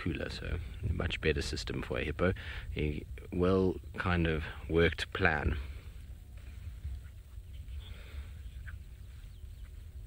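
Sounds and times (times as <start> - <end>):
faint bird calls: 5.5 - 10.0.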